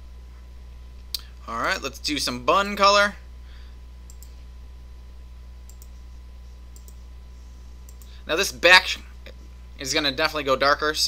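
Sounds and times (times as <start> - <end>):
steady low hum: 0.0 - 11.0
computer mouse clicking: 4.1 - 4.4, 5.7 - 6.0, 6.7 - 7.0, 7.9 - 8.1.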